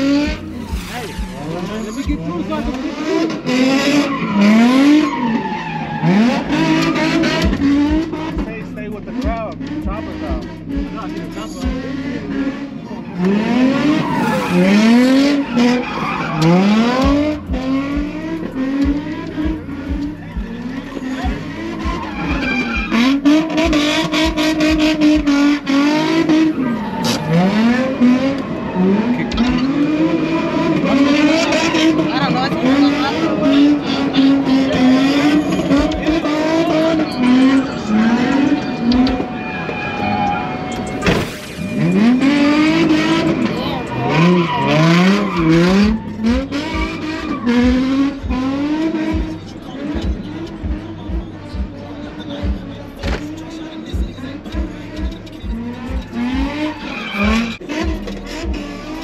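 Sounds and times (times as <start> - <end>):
car engine revving: 0.0 - 59.0
tires squealing and skidding: 0.0 - 59.0.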